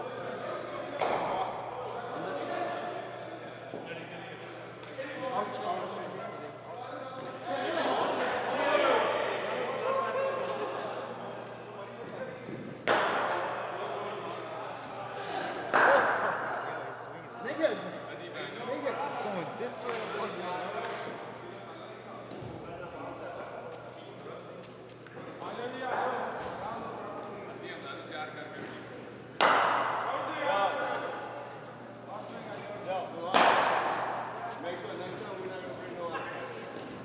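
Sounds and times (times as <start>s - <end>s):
cricket bat striking ball: 29.4s - 30.1s, 33.3s - 34.1s.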